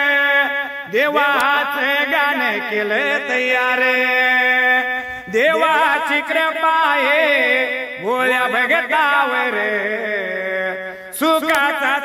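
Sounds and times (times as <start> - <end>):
person singing devotional song: 0.0 - 12.0.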